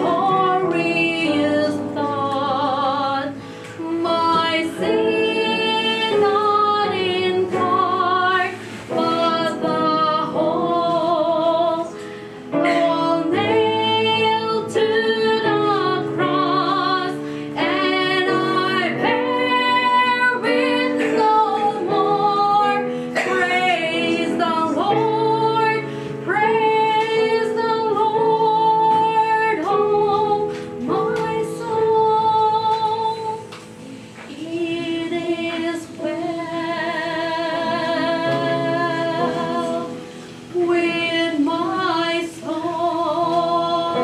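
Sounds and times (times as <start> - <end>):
woman singing: 0.0 - 44.0.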